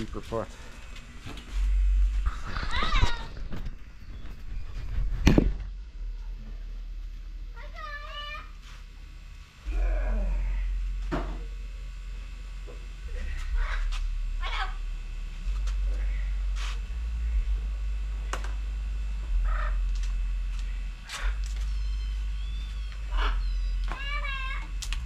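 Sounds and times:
steady low rumble: 0.0 - 25.0
animal calls: 19.4 - 19.8, 21.0 - 24.7.

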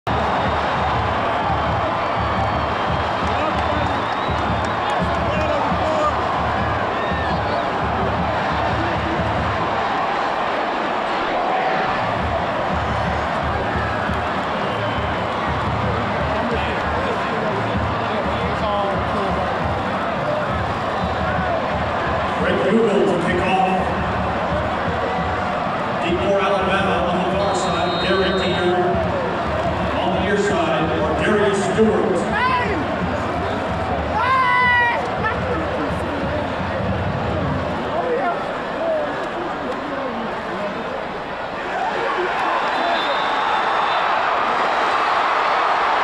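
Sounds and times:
stadium crowd noise: 0.0 - 46.0
music over loudspeakers: 12.0 - 38.0.

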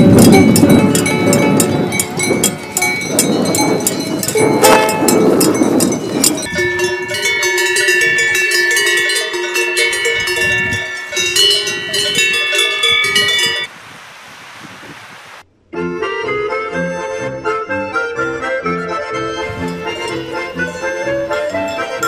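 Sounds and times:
ukulele strumming: 0.0 - 6.5, 19.4 - 22.0
cowbells clanging: 0.0 - 13.7, 18.8 - 22.0
steady hiss: 13.7 - 15.5.

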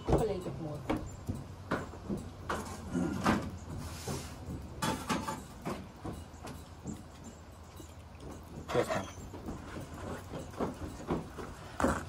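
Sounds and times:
short knocks and scrapes: 2.5 - 6.2.

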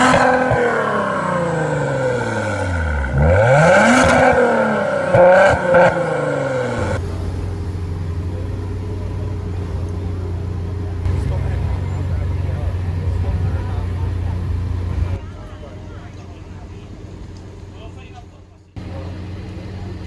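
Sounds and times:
car engine idling: 0.0 - 20.0
street sound: 0.0 - 20.0.

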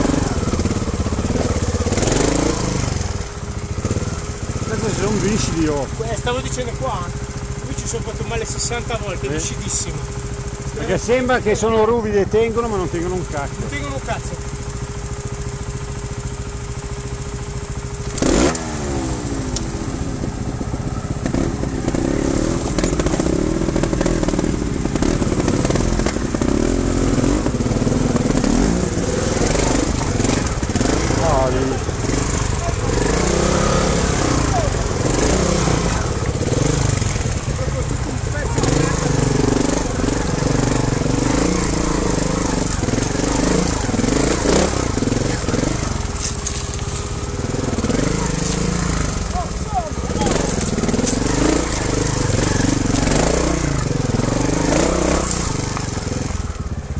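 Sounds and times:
motorcycle engine revving: 0.0 - 56.9.

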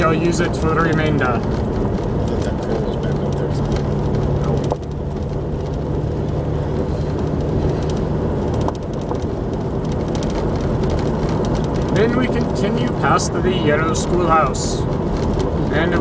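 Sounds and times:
car engine drone: 0.0 - 16.0
faint clicks and rattles: 0.0 - 16.0
tyres on gravel road: 0.0 - 16.0.

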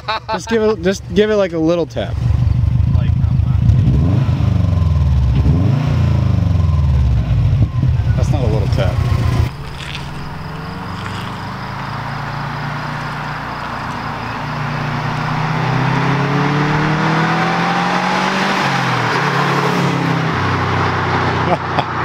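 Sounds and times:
car engine accelerating: 0.4 - 22.0.

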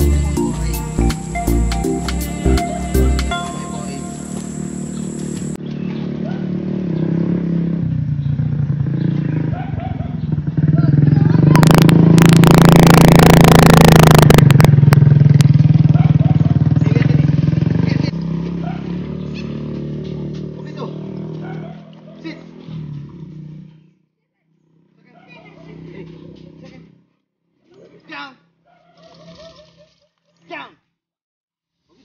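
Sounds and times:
motorcycle engine running: 0.0 - 23.9.

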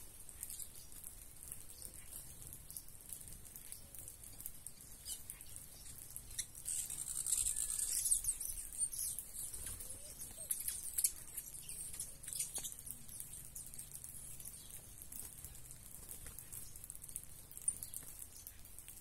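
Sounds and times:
small birds chirping and twittering: 0.0 - 19.0.

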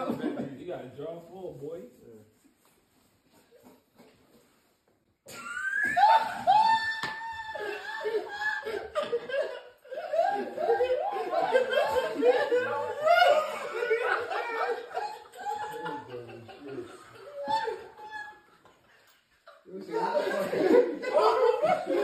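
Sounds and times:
men laughing: 0.0 - 0.6, 5.3 - 22.0
men talking and exclaiming: 0.0 - 2.1, 5.4 - 22.0.

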